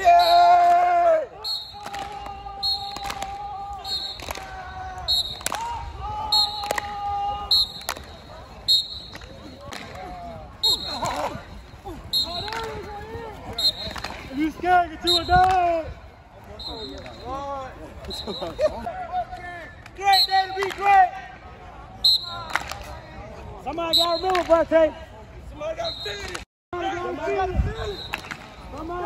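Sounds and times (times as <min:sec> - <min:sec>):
people shouting: 0:00.0 - 0:08.6
players clapping in rhythm: 0:04.2 - 0:04.5, 0:05.3 - 0:05.7.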